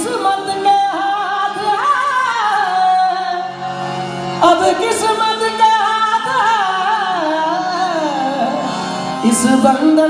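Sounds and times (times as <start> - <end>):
harmonium chords: 0.0 - 10.0.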